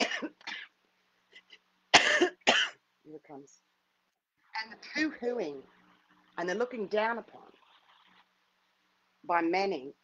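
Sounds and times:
woman clearing her throat: 0.0s - 0.7s
woman coughing: 0.0s - 0.8s, 1.9s - 2.8s.

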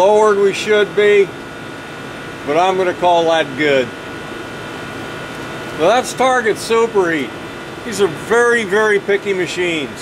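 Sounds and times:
man speaking: 0.0s - 1.4s, 2.5s - 4.0s, 5.8s - 10.0s
air conditioner running: 0.0s - 10.0s
faint steady whine: 0.0s - 10.0s.

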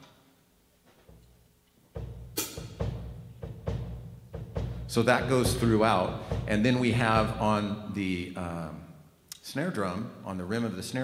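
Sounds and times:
bass drum steady pattern: 1.1s - 8.0s.

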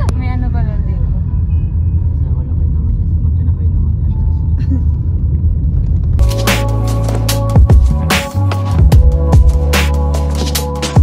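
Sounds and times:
car cabin road rumble: 0.0s - 6.4s.

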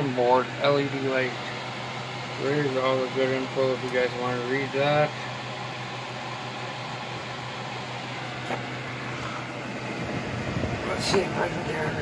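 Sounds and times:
electric fan whirring: 0.0s - 12.0s.

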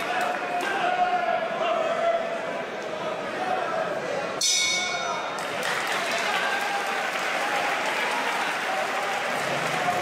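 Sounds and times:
boxing bell: 4.4s - 5.3s
crowd applauding: 5.4s - 10.0s.

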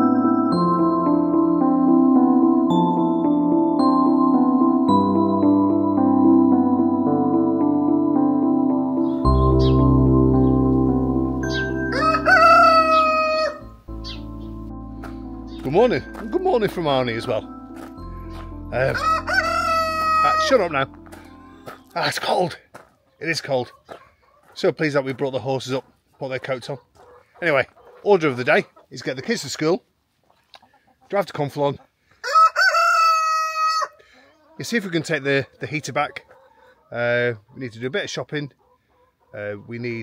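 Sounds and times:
soft background music: 0.0s - 22.4s
rooster crowing: 11.6s - 13.7s, 19.0s - 20.5s, 32.2s - 34.2s.

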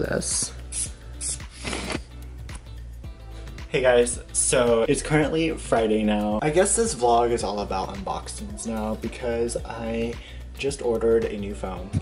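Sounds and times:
background music: 0.0s - 12.0s
spray bottle hissing: 0.7s - 2.1s.

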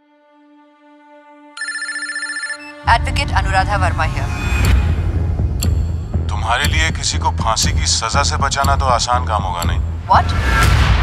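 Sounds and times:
electronic telephone ring: 1.6s - 2.9s
woman speaking: 2.9s - 4.4s.

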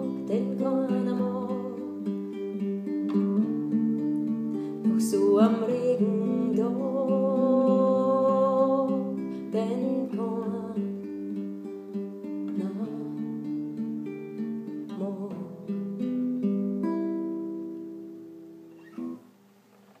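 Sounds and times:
classical guitar playing: 0.0s - 20.0s.

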